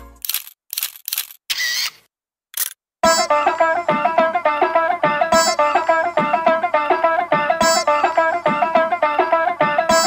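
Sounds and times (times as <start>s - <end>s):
camera shutter clicks: 0.2s - 2.0s, 2.6s - 2.8s.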